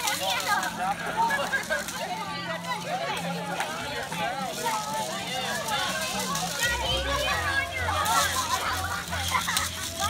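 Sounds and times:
adults talking: 0.0 - 10.0
children chattering and calling out: 0.0 - 10.0.

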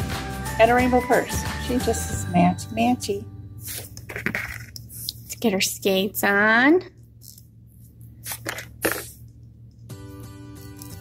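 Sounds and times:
background music with held tones: 0.0 - 3.7, 9.8 - 11.0.

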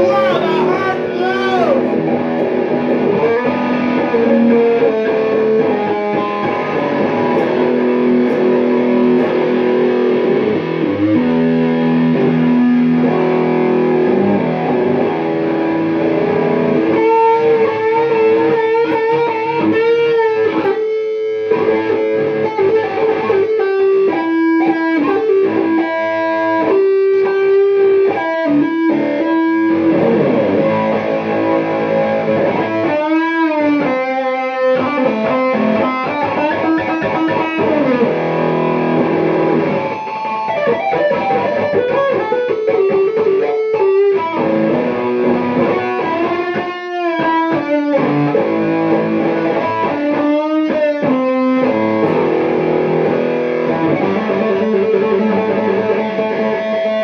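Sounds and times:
distorted electric guitar blues lead: 0.0 - 57.0.

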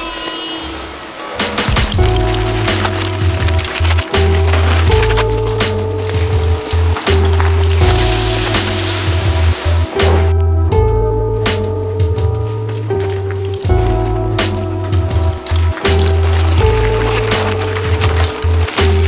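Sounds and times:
background music with a beat: 1.4 - 19.0.

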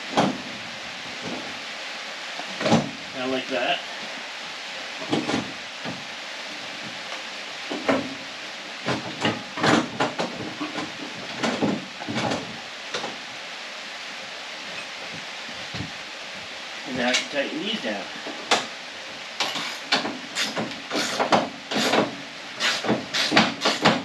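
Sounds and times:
background hiss: 0.0 - 24.0.

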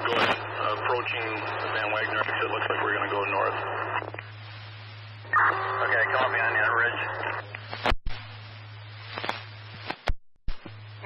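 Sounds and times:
radio static hiss: 0.0 - 11.0
steady low hum: 0.0 - 11.0
radio squelch clicks: 7.1 - 8.2, 9.2 - 10.7.

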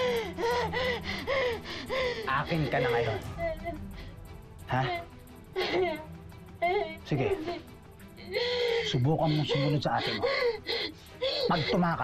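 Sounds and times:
woman sobbing: 0.0 - 12.0.

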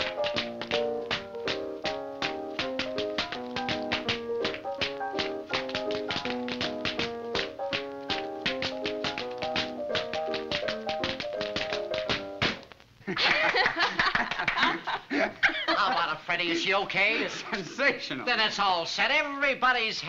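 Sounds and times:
tap shoes clicking: 0.0 - 12.8.

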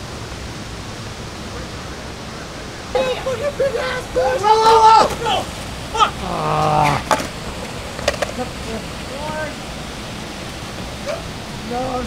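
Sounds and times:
water rushing through channel: 0.0 - 12.0
people shouting: 2.9 - 7.2, 11.0 - 11.4
skateboard clacking on concrete: 7.0 - 8.5.

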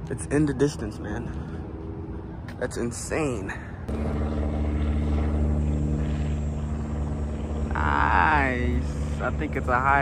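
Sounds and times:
light plane engine hum: 0.0 - 10.0.

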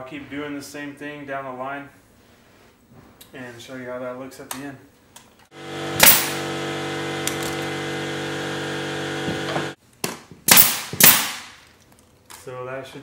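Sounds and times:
steady machine hum: 5.5 - 9.8
pneumatic nailer firing into wood: 5.5 - 11.6.

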